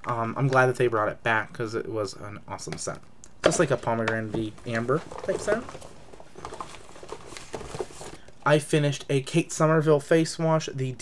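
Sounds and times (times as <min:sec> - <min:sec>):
plastic bottles tapping and rustling: 0:03.4 - 0:08.4.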